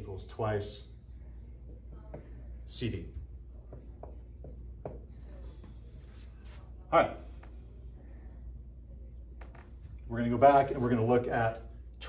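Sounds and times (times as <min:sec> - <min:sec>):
marker writing on whiteboard: 0:01.3 - 0:02.5, 0:03.1 - 0:07.8.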